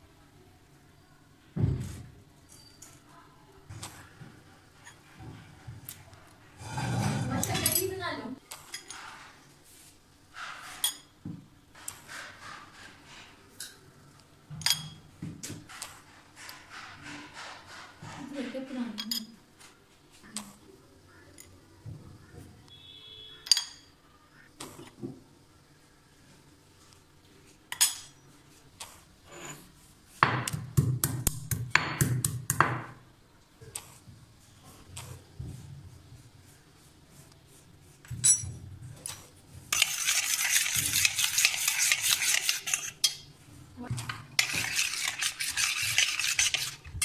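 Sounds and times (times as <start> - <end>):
spoon scraping bowl: 6.6 - 7.9, 28.8 - 29.8, 38.2 - 43.3, 44.0 - 47.0.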